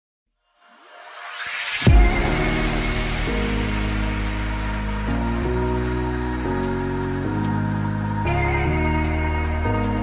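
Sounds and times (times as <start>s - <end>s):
bass-boosted electronic music: 0.6s - 10.0s.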